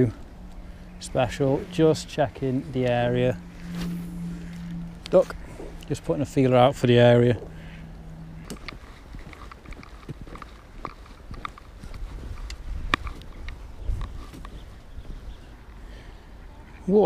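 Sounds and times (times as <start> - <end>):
camera handling rumble: 8.4 - 15.0
footsteps on footbridge: 8.4 - 15.5.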